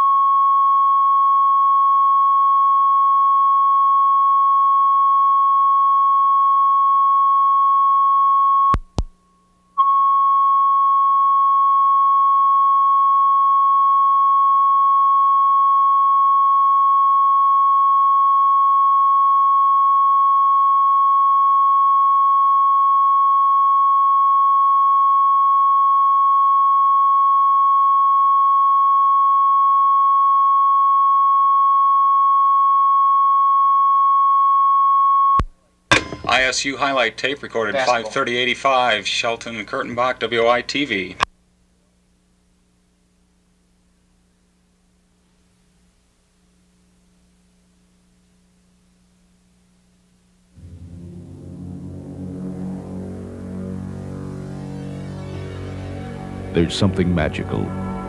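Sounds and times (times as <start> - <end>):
steady reference tone: 50.6 - 58.0.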